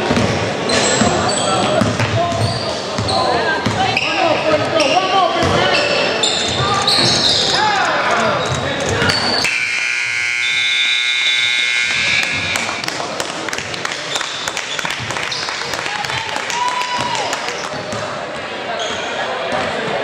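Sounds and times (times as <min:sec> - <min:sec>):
scoreboard buzzer: 0:09.4 - 0:13.2
players and spectators shouting: 0:15.8 - 0:18.0.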